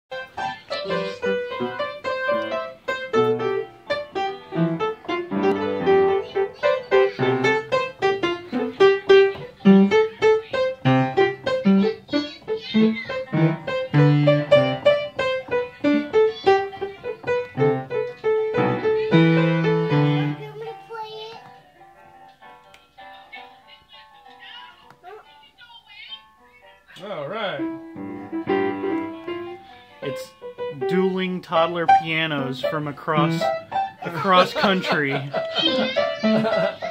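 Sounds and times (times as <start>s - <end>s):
upright piano played unevenly: 0.1s - 25.0s, 26.1s - 36.9s.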